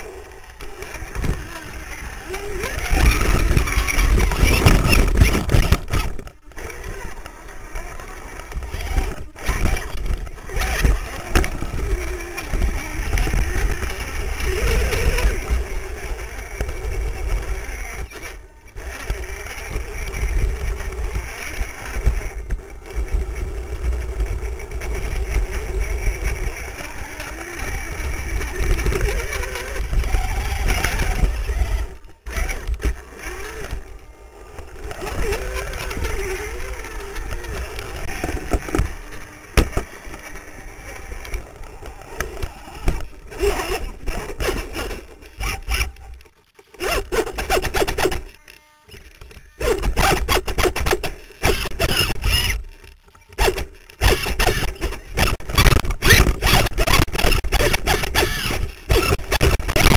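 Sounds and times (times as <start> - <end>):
electric motors whining: 0.0 - 59.9.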